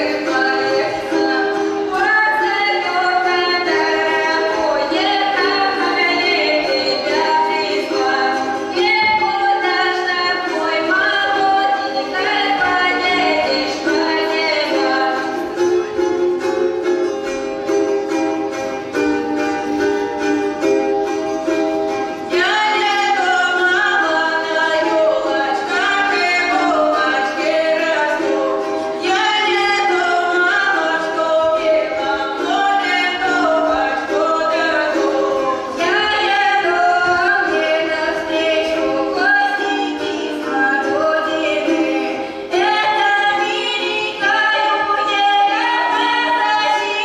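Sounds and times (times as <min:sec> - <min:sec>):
women singing together: 0:00.0 - 0:15.4, 0:22.3 - 0:47.0
dance music: 0:00.0 - 0:47.0.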